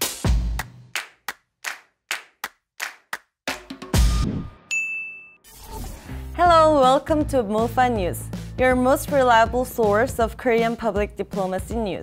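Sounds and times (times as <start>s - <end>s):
sharp claps: 0.0s - 3.7s.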